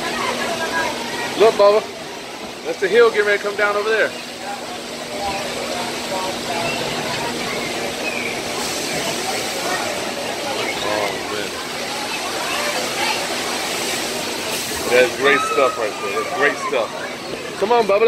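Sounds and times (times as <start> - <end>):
indistinct voices: 0.0 - 18.0
water rushing through channel: 0.0 - 18.0.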